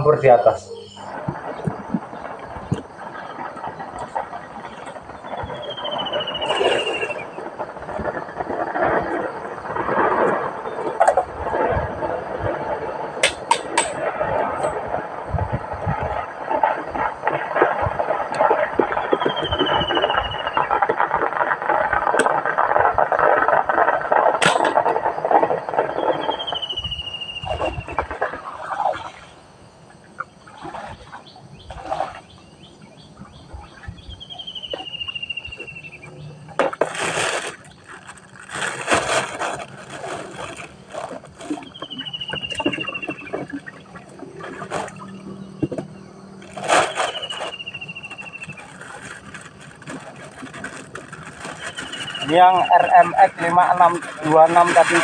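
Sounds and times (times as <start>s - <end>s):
steady rushing noise: 0.0s - 30.2s.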